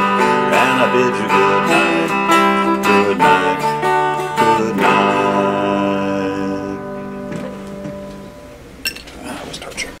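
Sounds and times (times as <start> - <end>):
guitar chord ringing: 0.0 - 8.8
guitar handling clicks and taps: 7.2 - 9.2.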